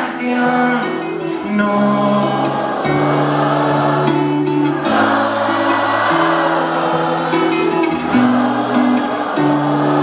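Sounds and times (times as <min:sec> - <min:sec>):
audience singing along: 0:00.0 - 0:10.0
live pop-rock band music: 0:00.0 - 0:10.0.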